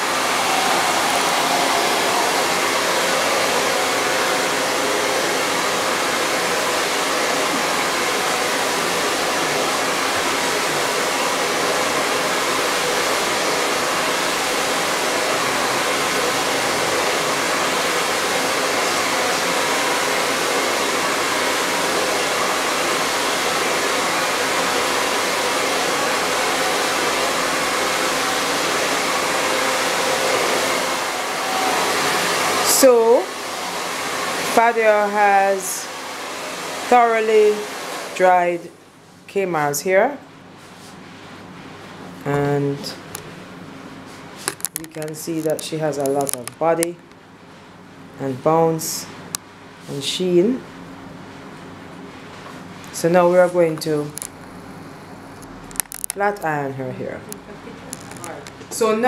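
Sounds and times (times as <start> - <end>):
blow dryer running: 0.0 - 38.8.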